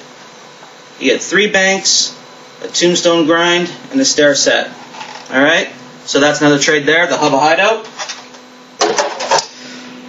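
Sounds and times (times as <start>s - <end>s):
steady low hum: 0.0s - 10.0s
objects rustling and clattering: 4.8s - 5.3s, 7.9s - 9.5s.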